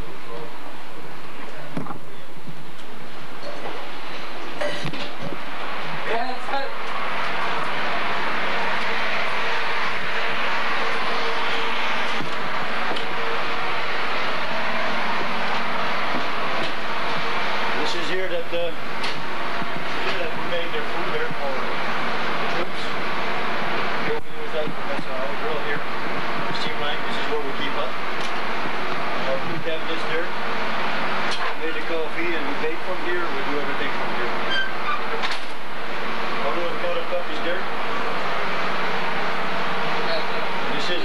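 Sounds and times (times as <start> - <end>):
loud machinery noise: 0.0 - 41.0
indistinct voices talking: 3.3 - 41.0.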